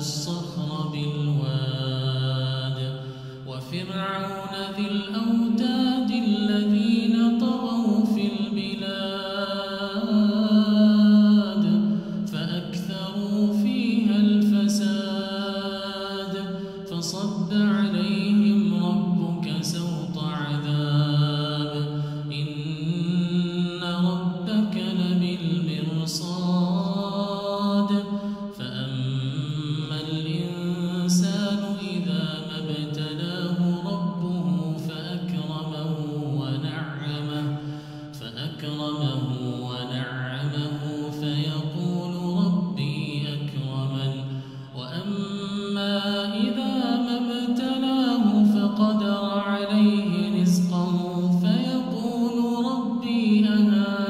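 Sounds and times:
man chanting melodically: 0.0 - 54.0.

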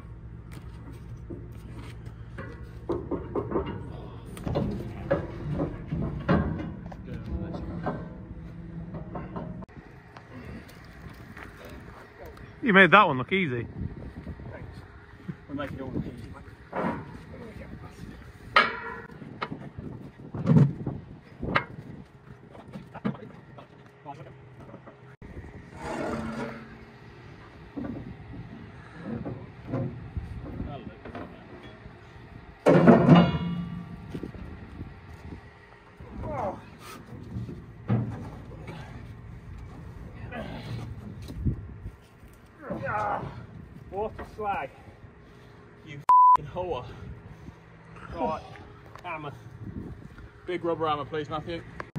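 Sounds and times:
metal knocks and clanks: 0.8 - 9.8, 16.6 - 21.9, 25.7 - 31.8, 32.6 - 34.6, 37.0 - 40.0.

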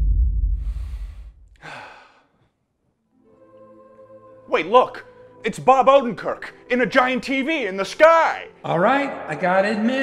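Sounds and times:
deep low rumble: 0.0 - 1.6
man sighing: 0.7 - 2.5.

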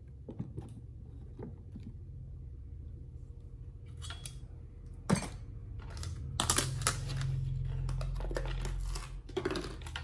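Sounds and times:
low steady hum: 0.0 - 10.0
plastic tubs clicking and clacking: 5.7 - 10.0.

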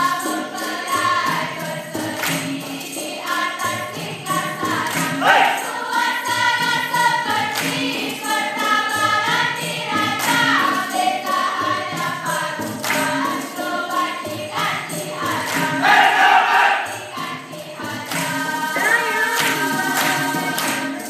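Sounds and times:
chorus singing a chant: 0.0 - 21.0
percussion with jingles: 0.0 - 21.0.

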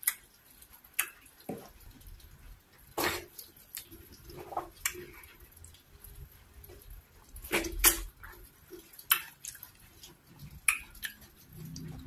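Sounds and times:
wet sticky eating sounds: 0.0 - 12.0.

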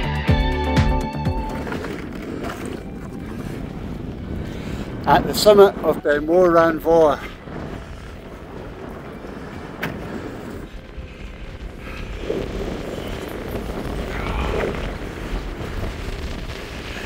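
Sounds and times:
wind buffeting microphone: 1.4 - 17.0.

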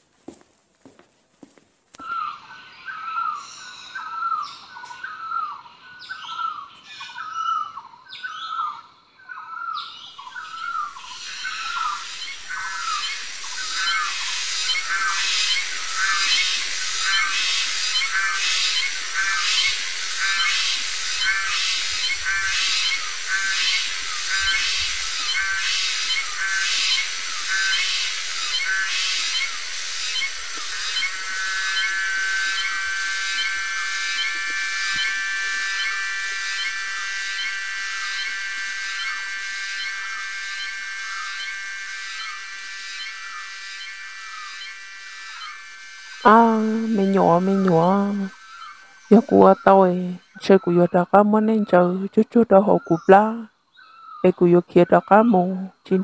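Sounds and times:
bird calling with falling notes: 2.0 - 36.0, 36.6 - 56.0
pulsing high insect chorus: 2.0 - 56.0.

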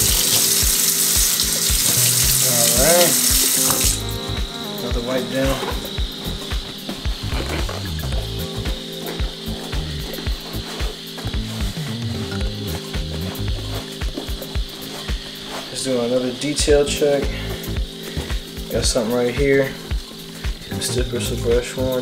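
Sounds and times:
cloth rubbing wet leather: 0.0 - 4.0
background music with bass line: 0.0 - 15.8, 16.5 - 22.0.

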